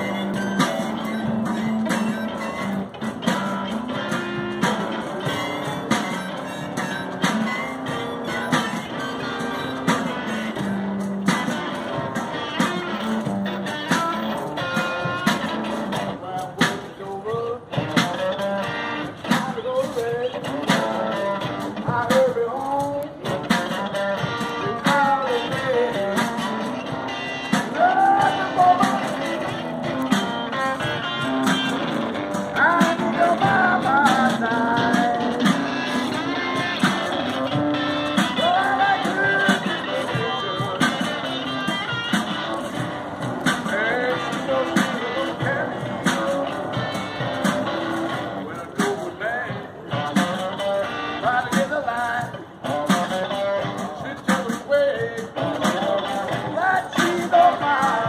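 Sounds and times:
electric guitar playing: 0.0s - 16.9s, 17.6s - 54.2s.

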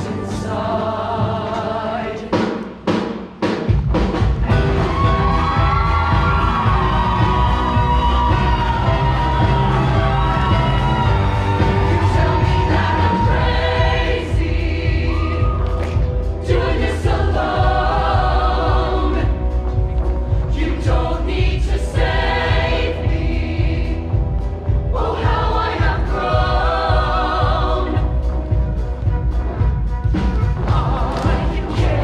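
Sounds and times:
choir singing with accompaniment: 0.0s - 3.6s, 4.5s - 32.0s.

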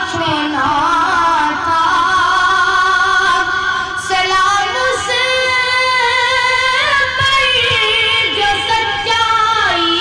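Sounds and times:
boy singing a devotional hymn: 0.0s - 10.0s.

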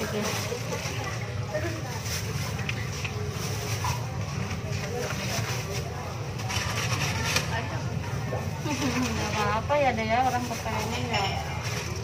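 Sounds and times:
chatter of voices: 0.0s - 12.0s.

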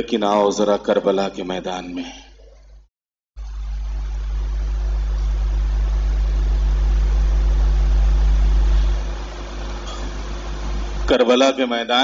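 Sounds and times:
electrical mains hum: 3.4s - 12.0s.

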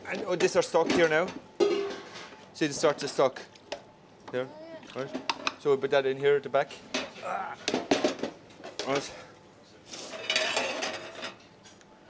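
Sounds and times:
metal pans and utensils clattering: 0.2s - 3.2s, 6.9s - 9.1s, 9.9s - 11.4s.

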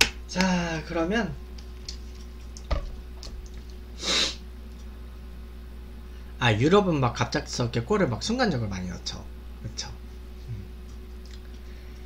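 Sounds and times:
man humming: 10.4s - 10.8s.

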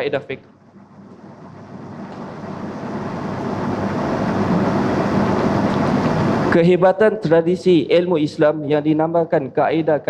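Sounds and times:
steady rushing room noise: 0.0s - 9.3s.

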